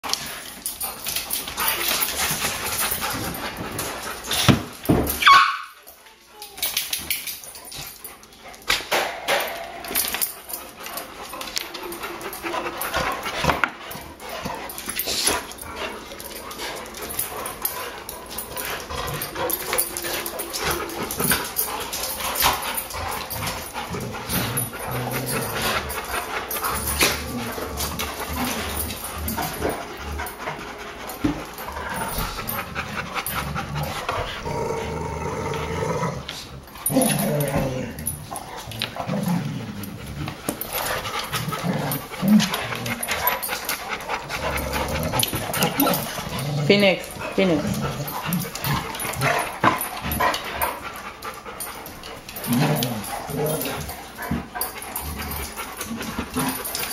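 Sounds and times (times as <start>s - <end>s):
dogs play growling: 0.0s - 5.2s, 5.9s - 56.9s
paws scuffling on tile floor: 0.0s - 56.9s.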